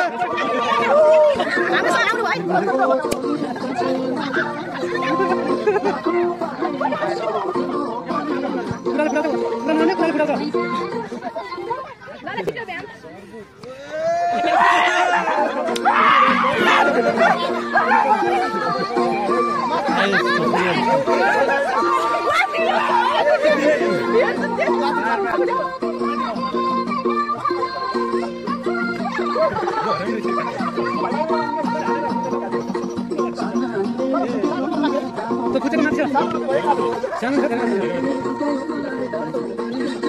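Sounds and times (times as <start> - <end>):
background music with held notes: 0.0 - 11.9, 14.4 - 40.0
people shouting and laughing: 0.0 - 40.0
people talking and calling out: 0.0 - 40.0.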